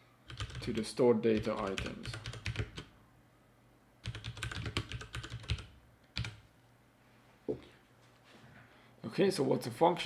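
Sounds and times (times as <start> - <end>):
typing on computer keyboard: 0.3 - 2.9, 4.0 - 6.4.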